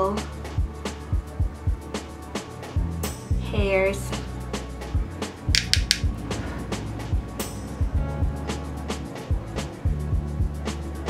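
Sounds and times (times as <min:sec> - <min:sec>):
music with steady beat and bass: 0:00.0 - 0:11.0
crisp percussion hits: 0:05.5 - 0:06.2.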